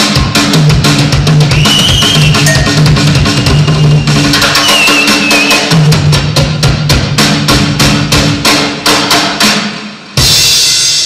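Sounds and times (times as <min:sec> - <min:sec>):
drum strokes: 0:00.0 - 0:11.0.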